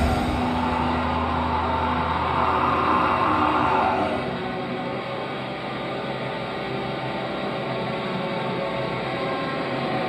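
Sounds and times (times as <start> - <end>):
live heavy metal band: 0.0 - 4.5.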